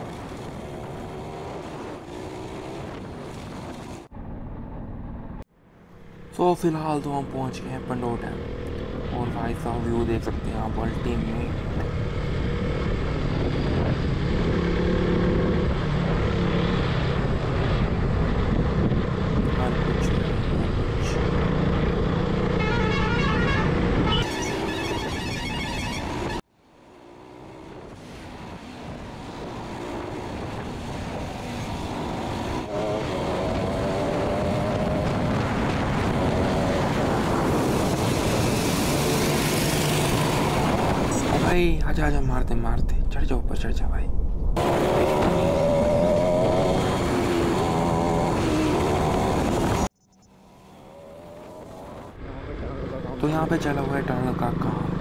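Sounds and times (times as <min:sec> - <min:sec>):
road noise: 0:00.0 - 0:55.0
wind rushing on microphone: 0:11.4 - 0:22.5, 0:27.8 - 0:49.9
vehicle horn honking: 0:22.6 - 0:26.4.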